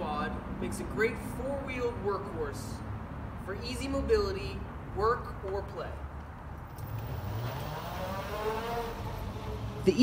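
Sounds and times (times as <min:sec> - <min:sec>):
mobility scooter motor whine: 0:06.7 - 0:10.0.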